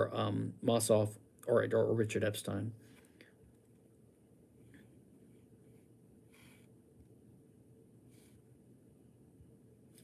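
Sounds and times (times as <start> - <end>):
faint breath: 5.7 - 6.8.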